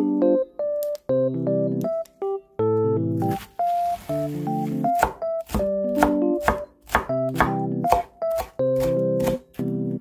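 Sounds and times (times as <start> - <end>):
electric piano music: 0.0 - 10.0
knife chopping on wooden board: 5.0 - 9.7.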